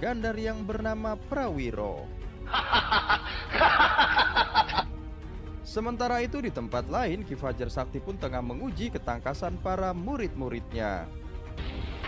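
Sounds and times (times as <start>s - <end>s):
music: 0.0s - 12.0s
man laughing: 2.5s - 4.9s.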